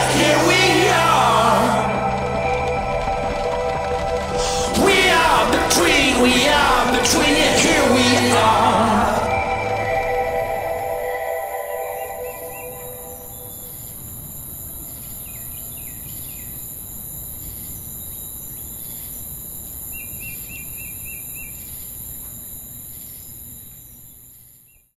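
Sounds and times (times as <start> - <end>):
song ending: 0.0 - 13.5
steady high hiss: 0.0 - 24.5.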